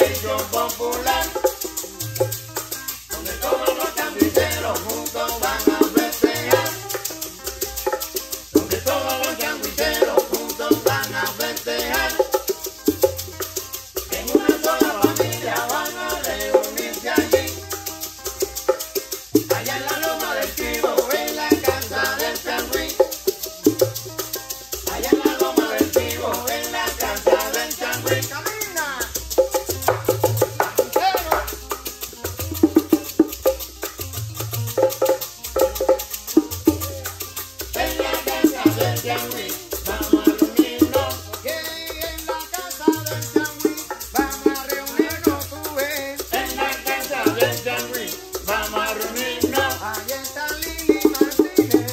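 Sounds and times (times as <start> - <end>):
hand drums: 0.0 - 51.9
maracas shaking: 0.0 - 51.9
tres guitar melody: 0.0 - 51.9.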